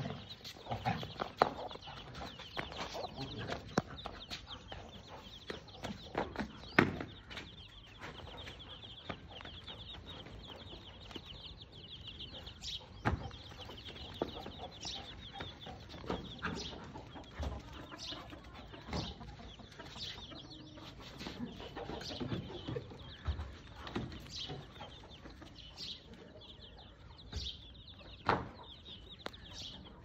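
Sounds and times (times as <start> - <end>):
chickens clucking: 0.0 - 30.0.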